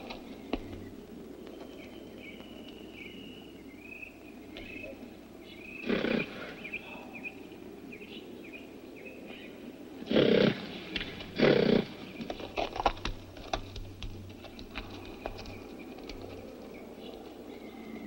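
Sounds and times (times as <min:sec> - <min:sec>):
hooves on stony ground: 0:00.0 - 0:03.4, 0:10.8 - 0:18.0
birds chirping: 0:00.0 - 0:18.0
horse snorting: 0:05.8 - 0:06.6, 0:10.1 - 0:12.2.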